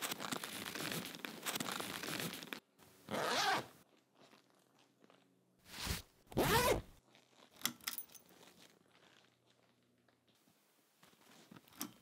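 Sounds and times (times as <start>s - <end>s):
backpack zipper rasping: 3.1s - 3.7s, 5.8s - 7.0s.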